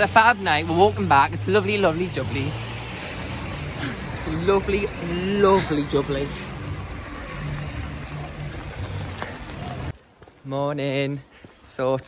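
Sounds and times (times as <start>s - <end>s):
heavy rain on an umbrella: 5.5s - 9.9s.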